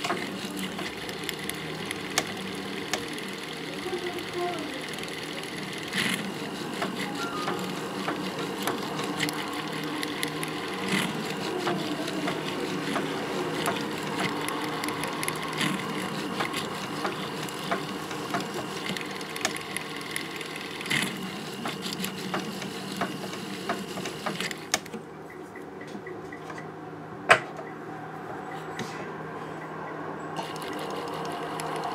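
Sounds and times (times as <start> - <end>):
jeweller's handpiece running: 0.0 - 25.0, 30.4 - 31.9.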